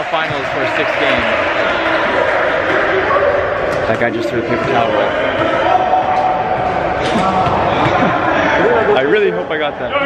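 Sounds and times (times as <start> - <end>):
players' voices and shouts: 0.0 - 10.0.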